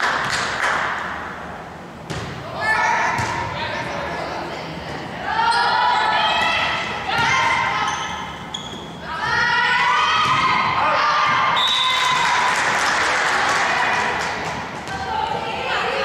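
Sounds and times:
players calling and shouting: 0:01.0 - 0:16.0.

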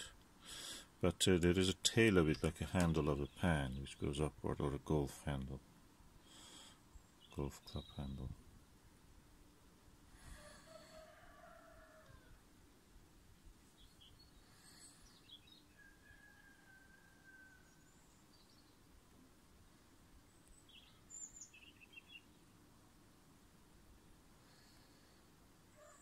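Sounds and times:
faint background hiss: 0:00.0 - 0:26.0
distant bird calls: 0:06.2 - 0:08.4, 0:13.7 - 0:18.9, 0:20.3 - 0:22.6.

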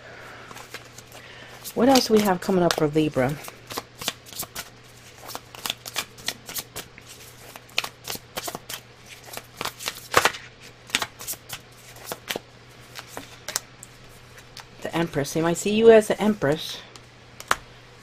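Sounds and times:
cards being shuffled: 0:00.5 - 0:13.6.

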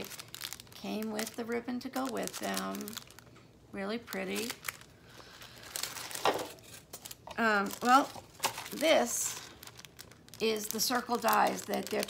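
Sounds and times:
plastic and tissue paper crinkling: 0:00.0 - 0:12.0.

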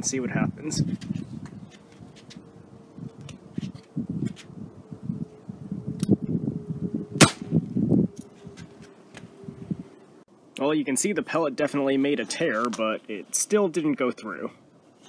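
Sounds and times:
air pistol shot crack: 0:07.2 - 0:07.5.

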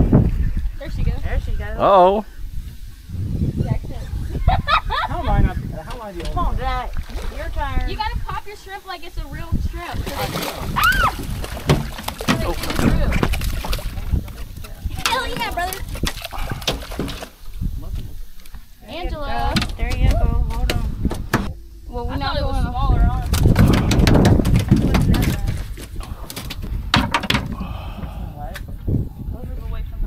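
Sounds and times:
knocks and clatters on boat deck: 0:10.0 - 0:17.4, 0:19.4 - 0:28.8
voices without clear words: 0:14.4 - 0:16.8, 0:17.7 - 0:26.6.

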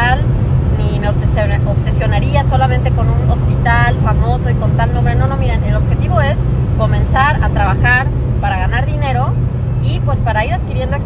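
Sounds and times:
woman speaking: 0:00.0 - 0:00.2, 0:00.8 - 0:11.0
car cabin drone: 0:00.0 - 0:11.0.

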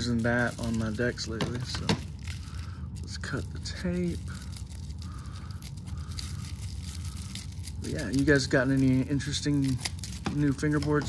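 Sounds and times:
plastic crinkling and rustling: 0:00.0 - 0:11.0
scissors snipping packing tape: 0:05.5 - 0:11.0.

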